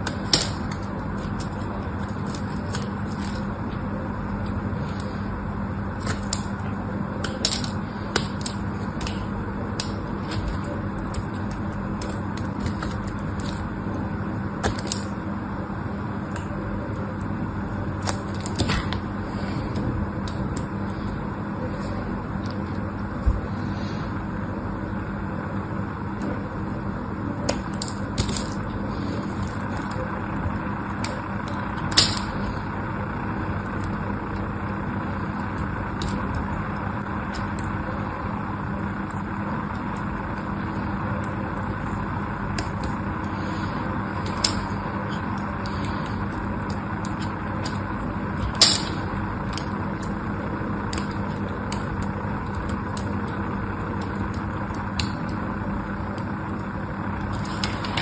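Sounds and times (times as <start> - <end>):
soap flakes cracking: 0.0 - 24.0, 27.4 - 58.0
knife shaving soap: 0.0 - 24.1, 26.2 - 58.0
low background hum: 0.0 - 58.0.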